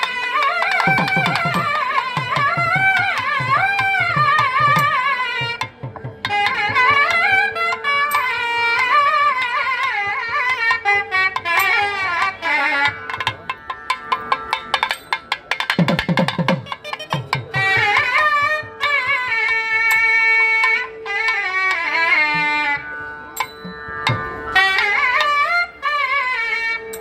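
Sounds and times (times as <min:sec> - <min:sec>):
thavil drum strokes: 0:00.0 - 0:10.7, 0:11.4 - 0:22.7
nadaswaram melody: 0:00.0 - 0:27.0.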